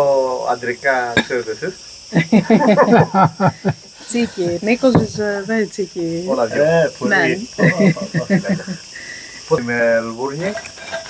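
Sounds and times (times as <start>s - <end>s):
high-pitched insect drone: 0.0s - 11.0s
voices talking: 0.0s - 11.0s.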